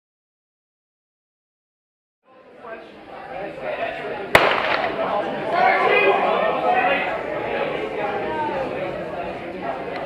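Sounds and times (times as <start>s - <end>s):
crowd chatter: 2.2s - 10.0s
starting pistol crack: 4.4s - 5.1s.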